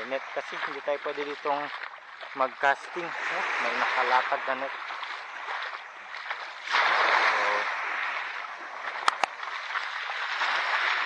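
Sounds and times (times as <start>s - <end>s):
wave washing over pebbles: 2.4s - 11.0s.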